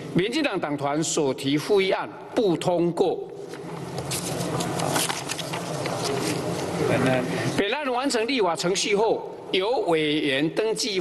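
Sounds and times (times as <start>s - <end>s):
paper rustling: 4.0s - 6.7s.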